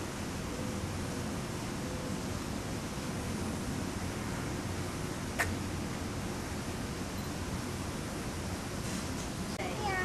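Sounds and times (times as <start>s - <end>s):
steady background noise: 0.0s - 10.0s
high-pitched voice calling out: 9.6s - 10.0s.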